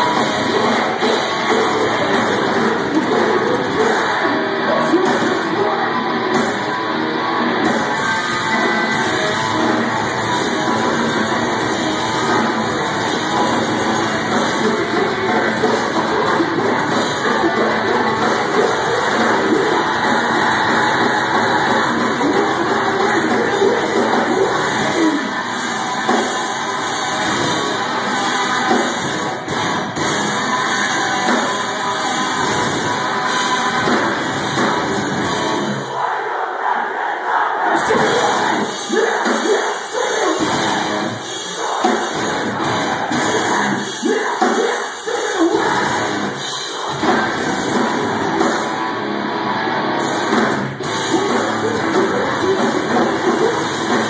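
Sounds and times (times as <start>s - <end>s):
live metal band playing: 0.0s - 36.1s, 37.8s - 54.0s
crowd shouting along: 0.0s - 48.8s
shouted vocals: 13.5s - 27.2s, 35.6s - 48.8s.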